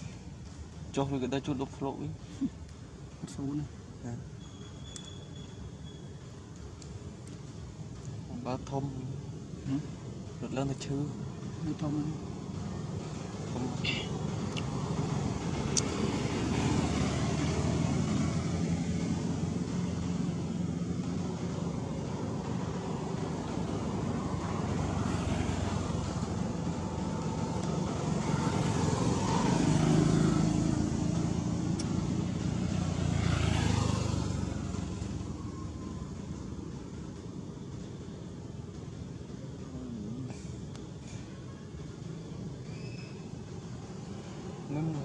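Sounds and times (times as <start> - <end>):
low rumble of traffic: 0.0 - 45.0.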